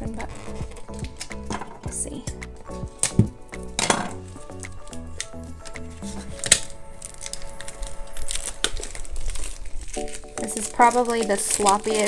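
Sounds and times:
plastic wrap crinkling and tearing: 0.0s - 1.9s, 3.0s - 12.0s
background music: 0.0s - 12.0s.

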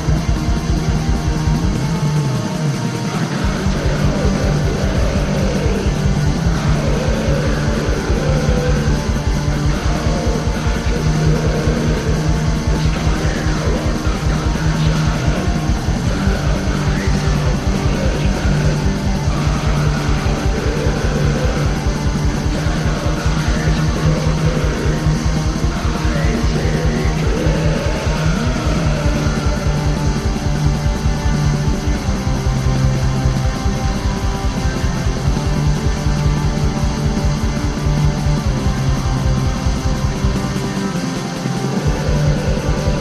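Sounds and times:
bass line: 0.0s - 43.0s
distorted guitars: 0.0s - 43.0s
fast drumming: 0.0s - 43.0s.

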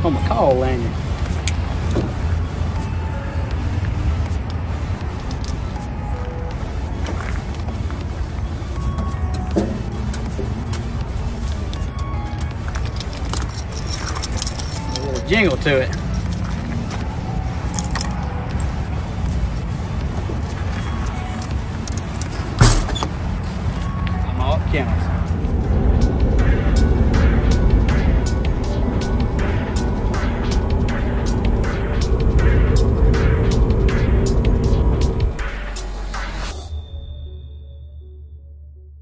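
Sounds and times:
truck road and engine rumble: 0.0s - 36.7s
music with steady beat: 0.3s - 15.3s, 25.0s - 37.0s.

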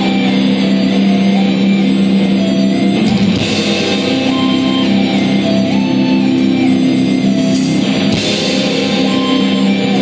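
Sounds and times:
distorted electric guitars: 0.0s - 10.0s
drum kit: 0.0s - 10.0s.

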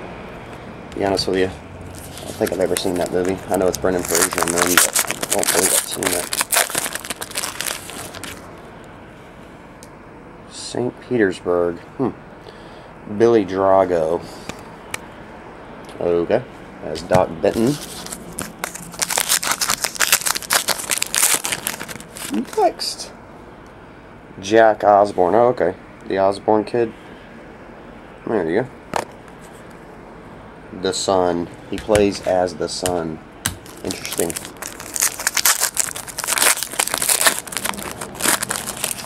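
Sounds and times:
plastic and foil wrapping crinkling: 1.9s - 8.5s, 17.6s - 22.7s, 33.6s - 39.0s.

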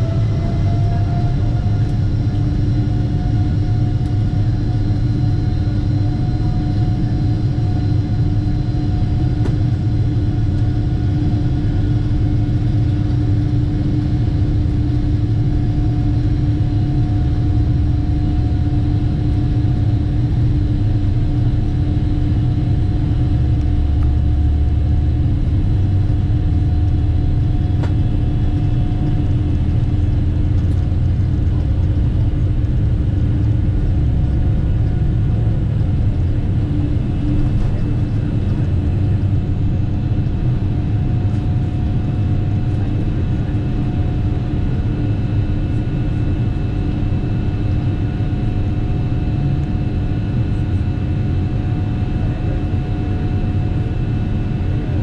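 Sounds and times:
deep rumble of taxiing airliner: 0.0s - 55.0s
jet engine hum: 0.0s - 55.0s.

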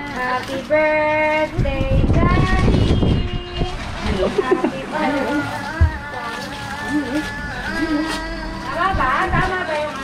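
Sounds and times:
people talking: 4.0s - 10.0s.

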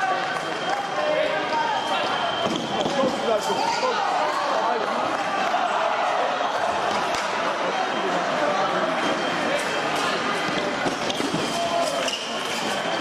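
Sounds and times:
indistinct voices in echoing hall: 0.0s - 13.0s.

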